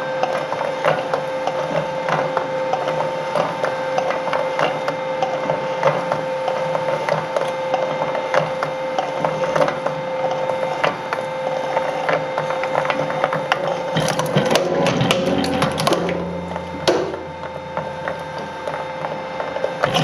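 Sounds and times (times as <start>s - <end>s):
shredder motor whine: 0.0s - 20.0s
metal cracking and crunching: 13.6s - 18.8s, 19.8s - 20.0s.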